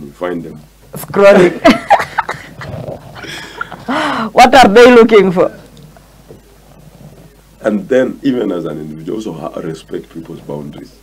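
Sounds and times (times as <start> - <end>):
man and woman laughing: 1.4 - 4.3.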